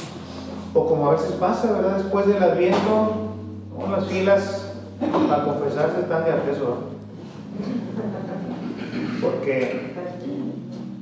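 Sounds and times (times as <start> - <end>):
low background rumble: 0.0 - 11.0.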